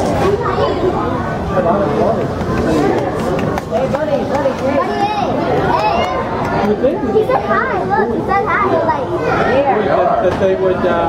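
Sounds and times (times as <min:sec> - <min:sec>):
background babble of voices: 0:00.0 - 0:11.0
children chattering and calling out: 0:00.0 - 0:11.0.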